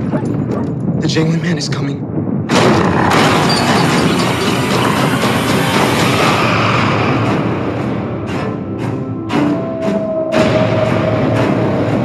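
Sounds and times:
dense clattering sound-design noise: 0:02.4 - 0:06.6.

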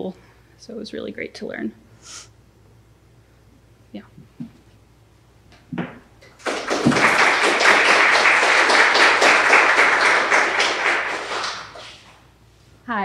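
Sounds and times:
audience applauding: 0:06.2 - 0:12.1.

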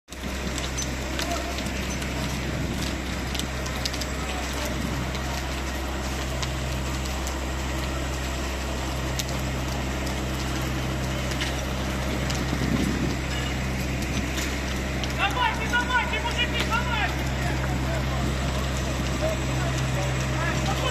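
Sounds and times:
faint crackles: 0:00.1 - 0:20.9
heavy engines droning: 0:00.1 - 0:20.9.

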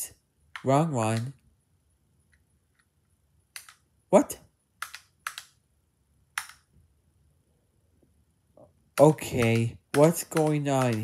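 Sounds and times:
computer key click: 0:04.8 - 0:05.6, 0:06.4 - 0:06.7, 0:09.0 - 0:11.0.

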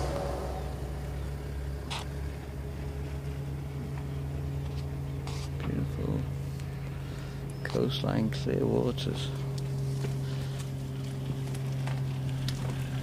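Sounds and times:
rumble: 0:00.0 - 0:05.2
low motor hum: 0:00.0 - 0:13.0.

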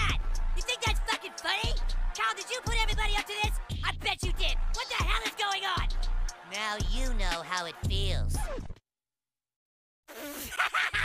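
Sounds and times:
music: 0:00.0 - 0:08.8.

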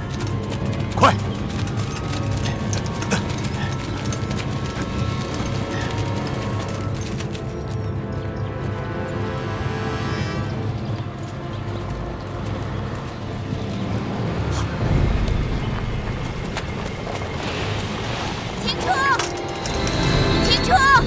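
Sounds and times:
truck engine rumbling: 0:00.0 - 0:08.5
film score music: 0:00.0 - 0:21.0.

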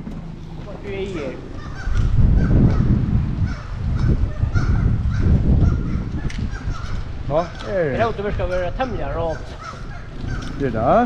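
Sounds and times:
steady low rumble: 0:00.0 - 0:11.0
seabirds calling harshly: 0:00.4 - 0:11.0.

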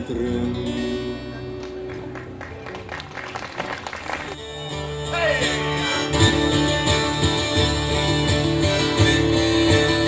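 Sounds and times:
faint band instruments: 0:00.0 - 0:10.0
audience applauding: 0:01.5 - 0:04.4.

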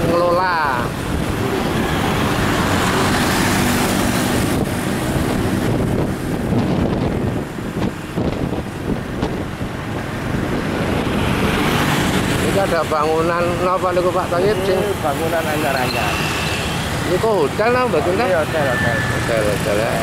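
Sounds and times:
wind rushing over microphone: 0:00.0 - 0:15.6
vehicle road and engine noise: 0:00.0 - 0:20.0.

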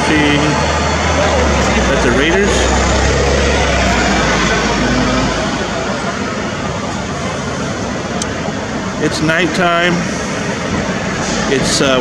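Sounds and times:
city street traffic: 0:00.0 - 0:12.0
low vehicle rumble: 0:00.0 - 0:12.0.

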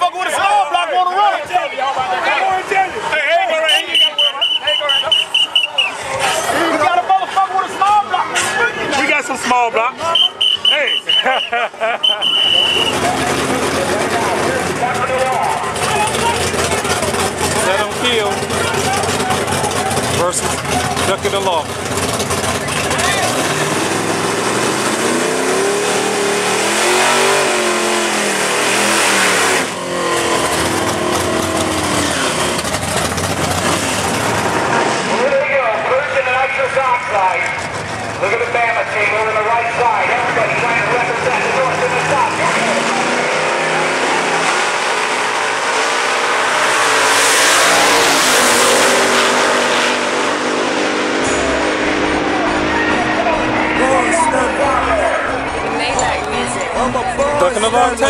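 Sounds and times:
crowd voices: 0:00.0 - 0:58.0
race car engines revving: 0:00.0 - 0:58.0.

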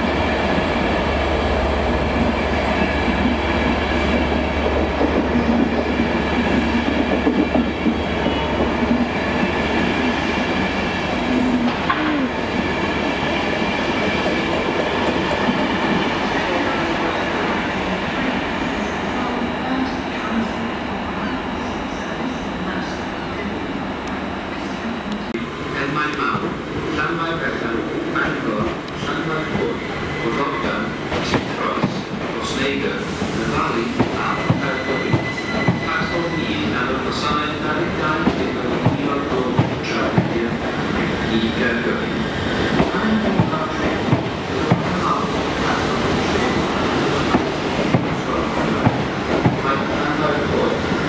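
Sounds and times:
train rumbling: 0:00.0 - 0:51.0.

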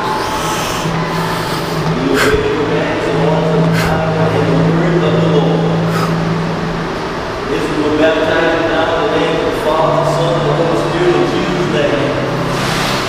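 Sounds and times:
low hum: 0:00.0 - 0:13.0.

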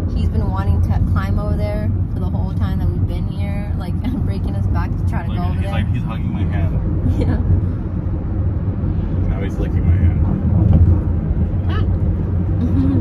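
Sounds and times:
van engine and road noise: 0:00.0 - 0:13.0.

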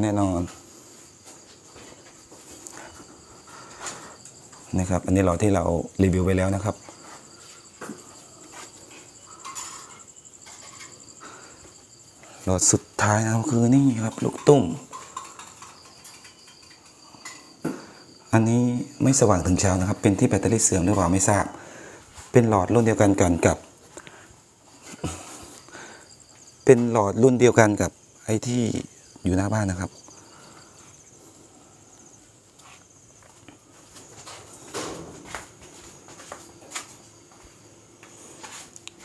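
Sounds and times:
crickets and insects chirring: 0:00.0 - 0:39.0.

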